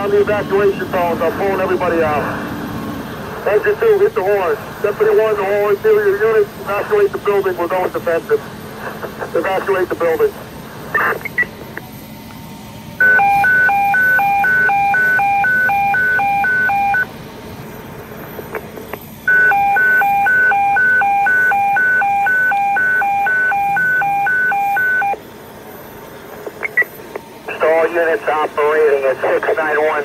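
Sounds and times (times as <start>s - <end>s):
dispatcher voice over radio: 0.0s - 2.4s, 3.3s - 11.8s, 27.4s - 30.0s.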